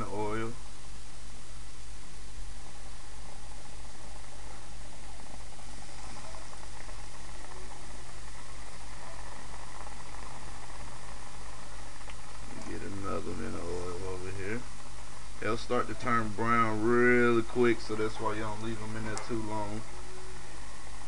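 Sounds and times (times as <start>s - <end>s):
food deep-frying in bubbling oil: 2.4s - 21.0s.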